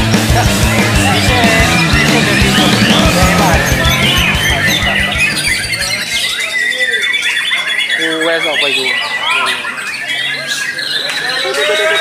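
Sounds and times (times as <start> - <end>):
music with a beat: 0.0 - 6.0
songbirds singing and chirping: 0.4 - 12.0.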